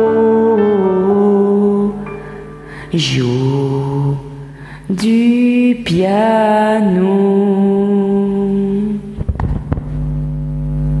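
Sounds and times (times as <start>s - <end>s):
karaoke backing track note: 0.0s - 11.0s.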